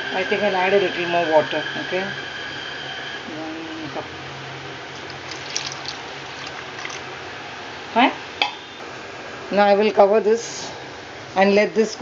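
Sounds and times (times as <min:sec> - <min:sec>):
water pouring into pot: 0:04.9 - 0:07.1.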